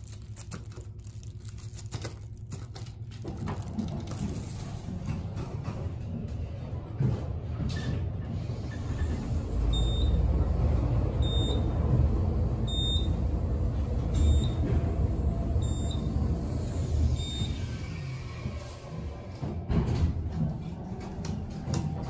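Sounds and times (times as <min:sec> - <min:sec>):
elevator rumble: 0:03.2 - 0:22.0.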